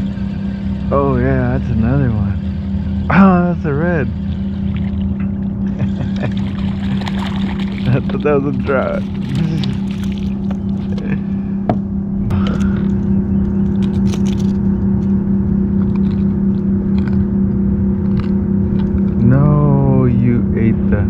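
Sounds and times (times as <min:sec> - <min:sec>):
steady motor hum: 0:00.0 - 0:21.0
knocks and splashes: 0:06.3 - 0:11.1.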